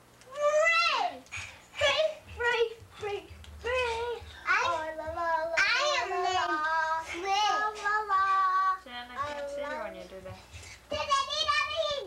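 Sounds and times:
child singing in high voice: 0:01.8 - 0:09.8, 0:10.9 - 0:12.0.

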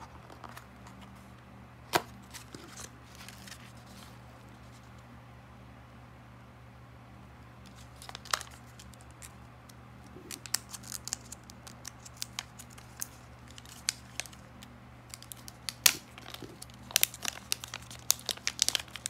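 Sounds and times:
plastic packaging crinkling: 0:07.7 - 0:09.4, 0:10.0 - 0:19.0.

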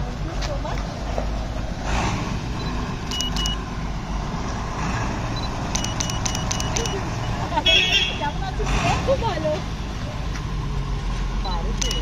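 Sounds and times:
engine running low rumble: 0:00.0 - 0:12.0
sharp clicks: 0:03.0 - 0:03.6, 0:05.7 - 0:07.0, 0:11.5 - 0:12.0.

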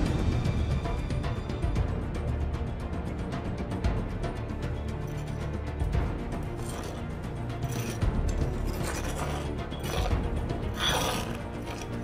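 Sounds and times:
background music: 0:00.0 - 0:12.0
scoop scraping metal drum: 0:07.6 - 0:12.0.

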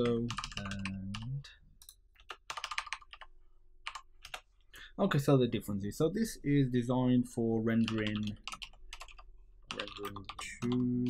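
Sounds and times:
keyboard typing: 0:00.0 - 0:04.5, 0:07.8 - 0:11.0.

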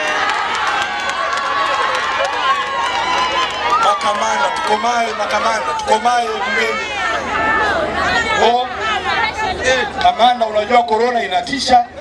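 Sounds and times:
large crowd shouting: 0:00.0 - 0:10.8.

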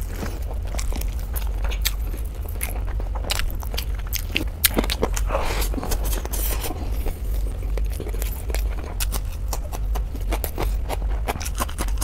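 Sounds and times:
person chewing food: 0:00.0 - 0:12.0
steady low hum: 0:00.0 - 0:12.0.

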